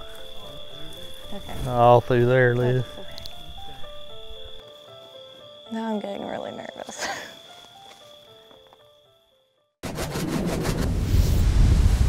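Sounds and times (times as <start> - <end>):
loud rushing whoosh: 9.8 - 12.0
deep rumble: 10.1 - 12.0.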